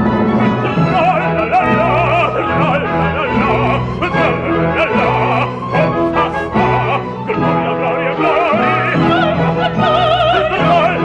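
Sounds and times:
operatic baritone singing: 0:00.0 - 0:11.0.

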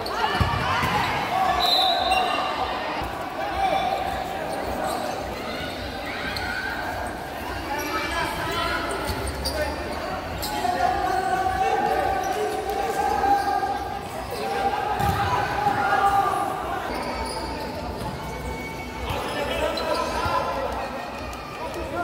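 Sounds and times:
people calling and shouting: 0:00.0 - 0:22.0
ball kicked and bouncing on court: 0:00.3 - 0:01.3, 0:15.0 - 0:15.8.

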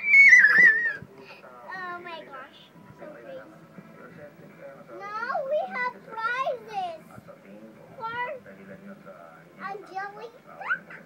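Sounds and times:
child squealing: 0:00.0 - 0:01.0.

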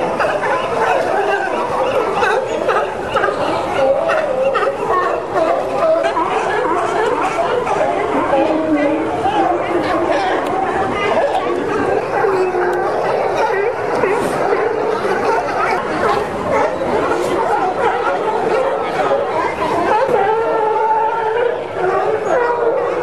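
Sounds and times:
people chattering: 0:00.0 - 0:23.0
sea lions barking: 0:00.0 - 0:23.0.

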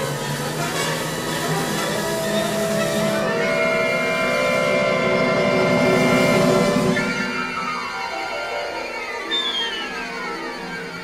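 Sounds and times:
orchestra sustained chord: 0:02.3 - 0:10.9.

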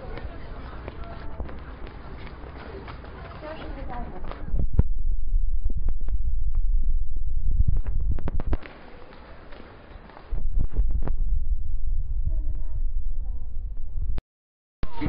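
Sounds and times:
microphone handling rumble: 0:03.6 - 0:08.8, 0:10.2 - 0:14.2.

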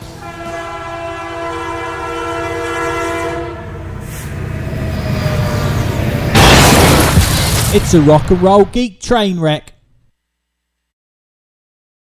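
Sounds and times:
multi-note train horn: 0:00.0 - 0:05.8
moving train rumble and clatter: 0:00.0 - 0:08.4.

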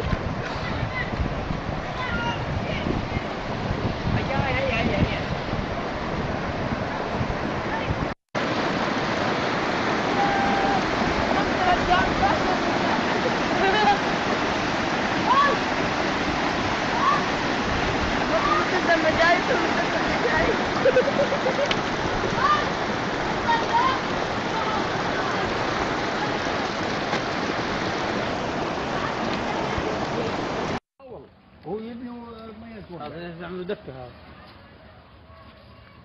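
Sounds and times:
floodwater rushing: 0:00.0 - 0:30.8.

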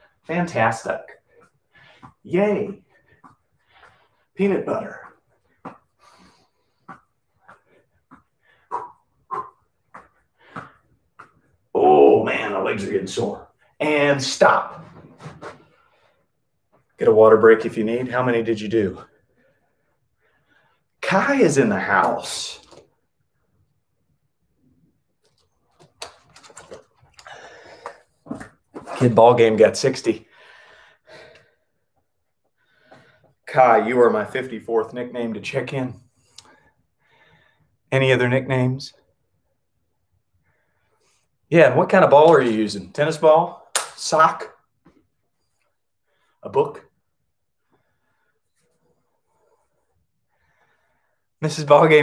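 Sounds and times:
man's sharp exertion breaths: 0:01.2 - 0:02.2, 0:02.8 - 0:04.4, 0:05.4 - 0:11.0, 0:30.3 - 0:31.8
clicks and rustling: 0:25.2 - 0:27.3.

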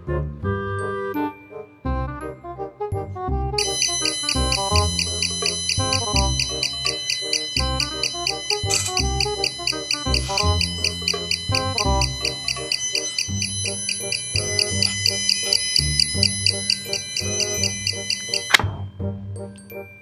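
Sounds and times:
background music: 0:00.0 - 0:20.0
rapid high-pitched alarm beeps: 0:03.6 - 0:18.6.

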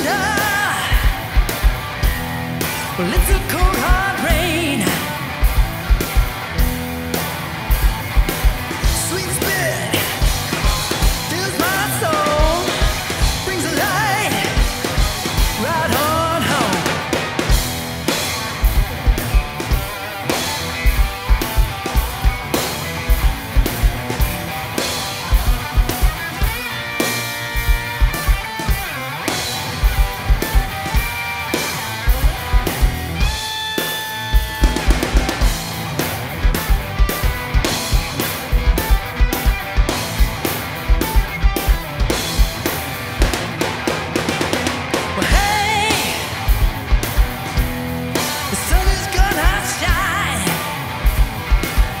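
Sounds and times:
drum kit: 0:00.0 - 0:52.0
electric guitar: 0:00.0 - 0:52.0.

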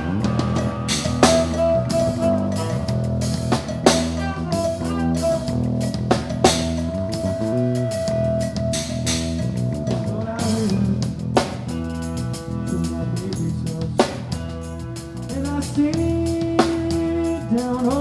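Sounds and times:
drum kit: 0:00.0 - 0:18.0
electric bass line: 0:00.0 - 0:18.0
electric guitar: 0:00.0 - 0:18.0.

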